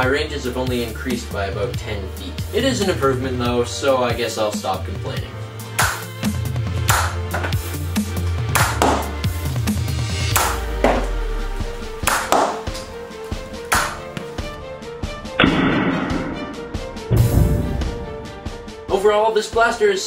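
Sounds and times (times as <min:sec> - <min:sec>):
music with bass and percussive hits: 0:05.6 - 0:18.9.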